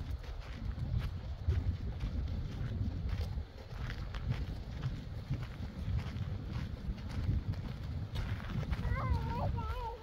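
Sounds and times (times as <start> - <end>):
footsteps on gravel: 0.0 - 10.0
wind rumble on microphone: 0.0 - 10.0
child calling out: 8.8 - 10.0.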